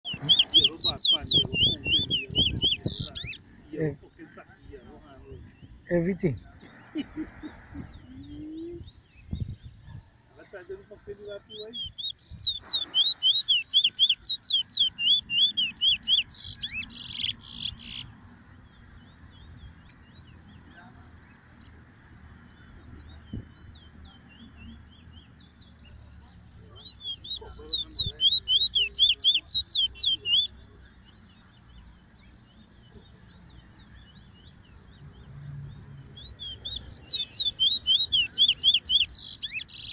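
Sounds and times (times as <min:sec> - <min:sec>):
small birds chirping: 0:00.0 - 0:39.9.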